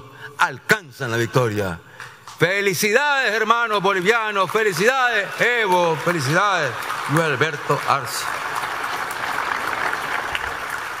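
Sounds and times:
hands clapping applause: 3.4 - 11.0.

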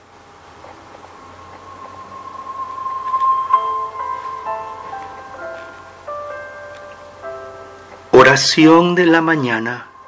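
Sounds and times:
faint hiss: 0.0 - 10.0
held high music note: 0.8 - 10.0.

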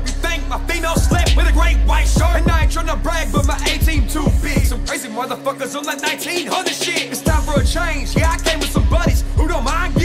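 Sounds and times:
man rapping over bass beat: 0.0 - 10.0.

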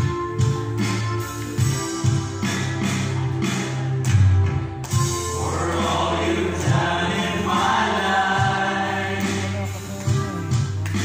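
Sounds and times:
instrumental backing: 0.0 - 11.0
group singing a gospel song: 5.2 - 10.0.

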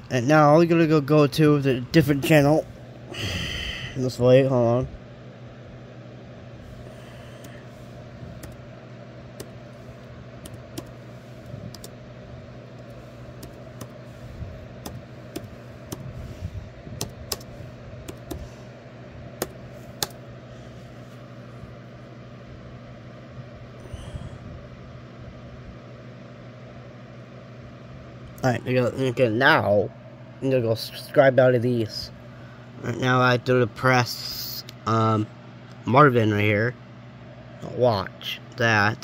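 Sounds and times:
low background hum: 0.0 - 39.0
laptop keys clicking: 8.4 - 8.6, 9.4 - 9.6, 10.4 - 11.0, 11.7 - 12.0, 12.8 - 14.0, 14.8 - 16.1, 17.0 - 18.5, 19.4 - 20.2.

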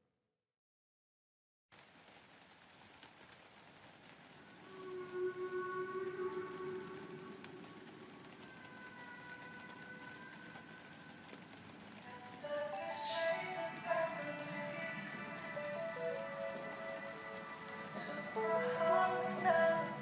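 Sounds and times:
steady hiss: 1.8 - 20.0.

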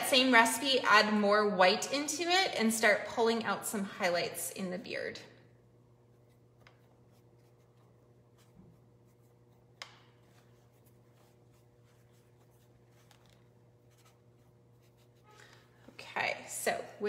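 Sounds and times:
low electrical hum: 0.0 - 17.0
brush scratching on palette: 6.0 - 15.5.

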